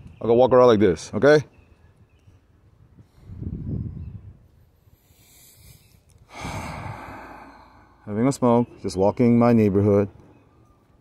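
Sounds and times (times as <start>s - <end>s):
man breathing: 4.8s - 8.1s.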